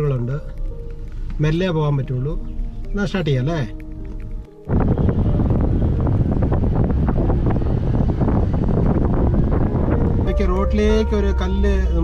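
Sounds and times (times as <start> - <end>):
road noise: 0.0 - 12.0
wind buffeting microphone: 3.7 - 12.0.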